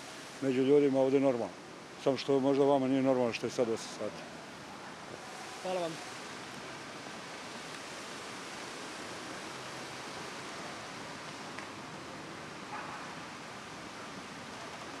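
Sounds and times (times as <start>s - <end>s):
outdoor background hiss: 0.0s - 15.0s.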